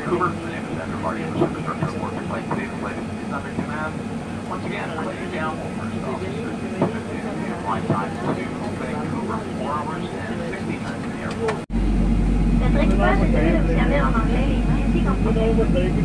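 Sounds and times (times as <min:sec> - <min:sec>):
airliner cabin hum: 0:00.0 - 0:16.0
indistinct voices: 0:00.0 - 0:16.0
very low steady drone: 0:11.1 - 0:16.0.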